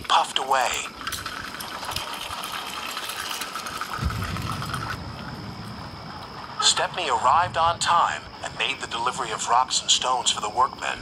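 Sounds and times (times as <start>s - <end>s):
deep rumble: 3.9s - 9.3s.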